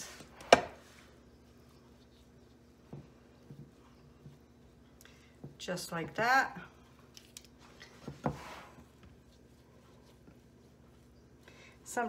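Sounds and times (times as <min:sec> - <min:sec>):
spatula soft taps: 0:02.8 - 0:05.6.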